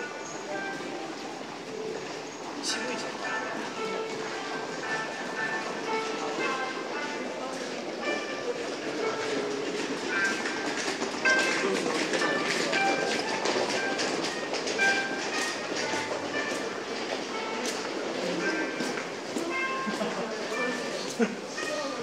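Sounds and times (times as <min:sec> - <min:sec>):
footsteps: 0:00.0 - 0:22.0
indistinct voices: 0:00.0 - 0:22.0.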